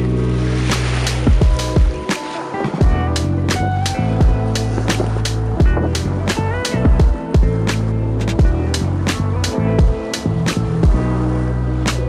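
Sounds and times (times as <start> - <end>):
held bass line: 0.0 - 2.1, 2.8 - 12.0
steady drum beat: 0.8 - 11.1.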